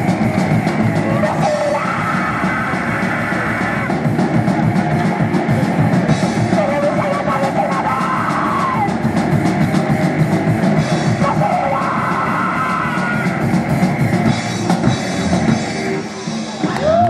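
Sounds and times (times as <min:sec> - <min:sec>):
rock band playing: 0:00.0 - 0:17.0.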